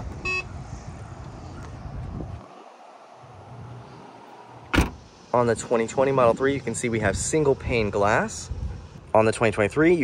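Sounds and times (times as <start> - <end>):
car trunk lid closing: 4.6 - 5.1
trunk lid thud: 4.6 - 5.1.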